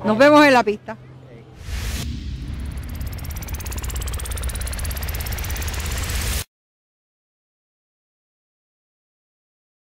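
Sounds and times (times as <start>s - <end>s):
engine revving with rising whine: 1.6s - 6.5s.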